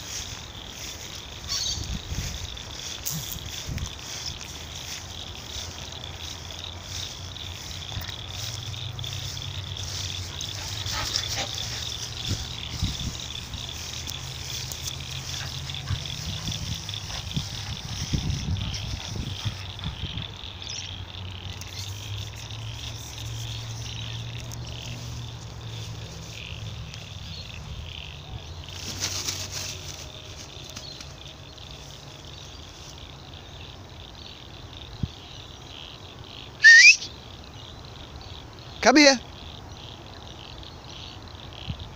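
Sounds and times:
grass rustling as dog moves: 0:00.0 - 0:20.0, 0:21.6 - 0:27.8, 0:28.6 - 0:33.1
sharp rising whistle: 0:36.6 - 0:37.1.

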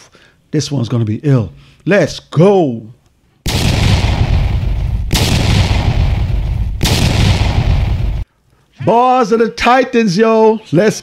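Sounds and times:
noisy transition blasts: 0:03.5 - 0:08.2.

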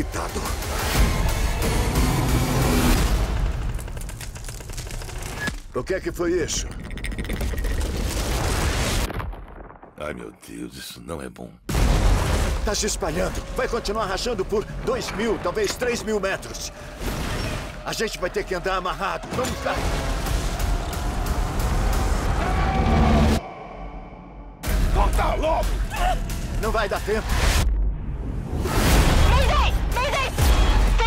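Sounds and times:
dramatic trailer music: 0:00.0 - 0:06.3, 0:11.7 - 0:31.0
ice cracking: 0:03.4 - 0:05.9, 0:06.5 - 0:10.0
deep rumbling boom: 0:07.8 - 0:10.2.

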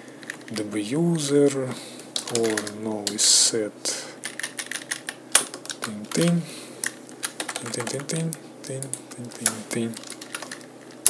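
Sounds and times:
computer keyboard typing: 0:02.2 - 0:02.8, 0:04.2 - 0:10.7
person mumbling: 0:05.8 - 0:06.6, 0:07.6 - 0:10.0.

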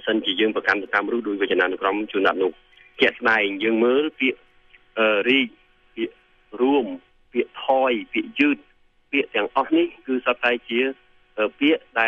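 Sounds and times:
man lecturing: 0:00.0 - 0:04.4, 0:05.0 - 0:12.0.

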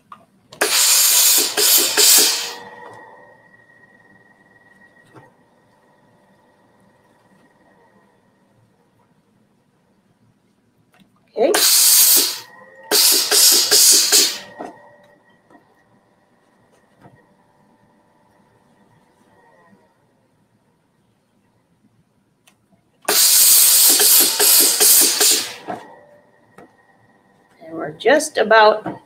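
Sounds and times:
steam iron hissing: 0:00.6 - 0:03.4, 0:11.5 - 0:14.8, 0:23.1 - 0:26.1.

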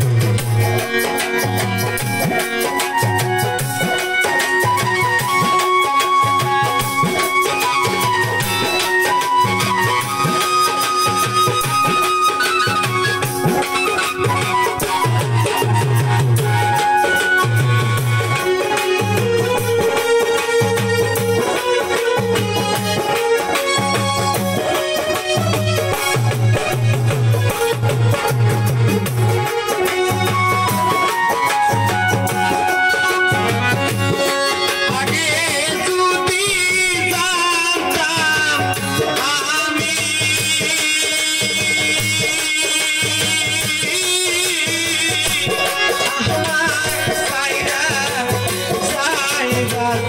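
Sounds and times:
electronic keyboard melody: 0:00.0 - 0:50.0
repeating drum beat: 0:00.0 - 0:50.0
wavering melody with vibrato: 0:00.0 - 0:50.0.

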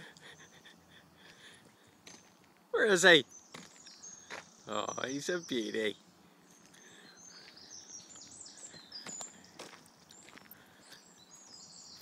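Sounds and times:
faint high bird chirps: 0:02.1 - 0:12.0.

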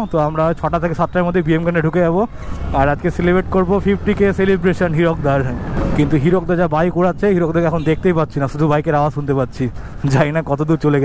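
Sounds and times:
man talking: 0:00.0 - 0:11.0
motorcycle rumbling: 0:00.0 - 0:11.0.

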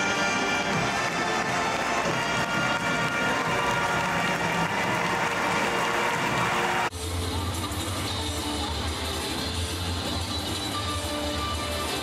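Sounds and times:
brass music: 0:00.0 - 0:06.9
arena crowd noise: 0:00.0 - 0:12.0.

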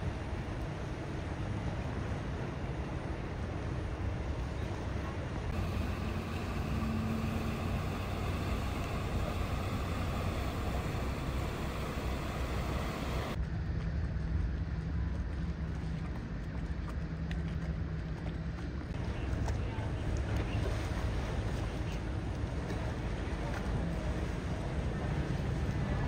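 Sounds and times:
low rumble of distant traffic: 0:00.0 - 0:26.0.

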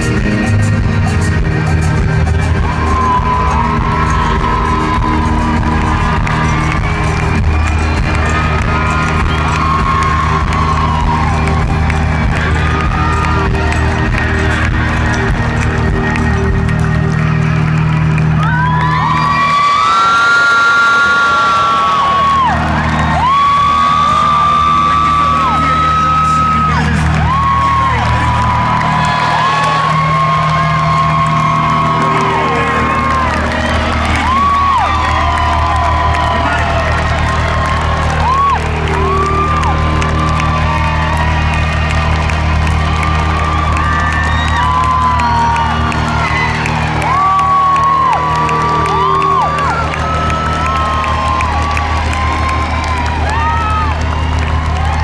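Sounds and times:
live band music: 0:00.0 - 0:19.6, 0:22.6 - 0:55.0
crowd cheering and whooping: 0:00.0 - 0:55.0.

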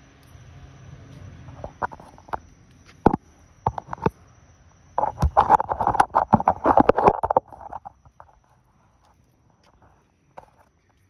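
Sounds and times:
phone handling noise: 0:05.0 - 0:08.0.

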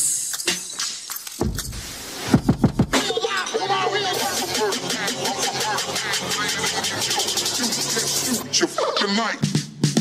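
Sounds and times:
hip-hop dance mix: 0:00.0 - 0:10.0
fast roll of sharp beats: 0:01.4 - 0:03.2.

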